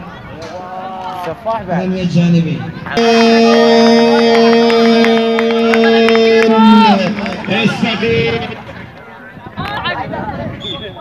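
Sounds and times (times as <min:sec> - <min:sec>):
man shouting long drawn-out: 0:03.0 - 0:08.6
sharp claps: 0:04.1 - 0:08.1.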